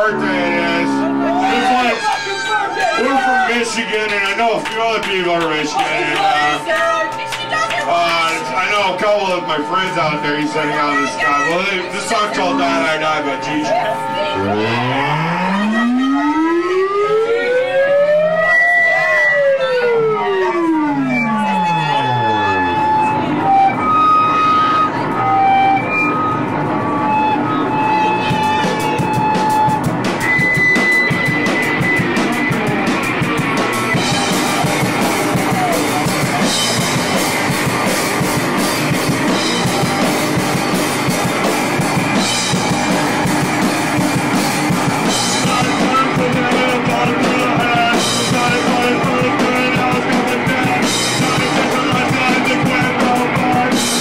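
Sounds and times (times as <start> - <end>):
punk rock band playing live: 0.0 - 15.0, 20.5 - 54.0
held high guitar notes: 0.0 - 54.0.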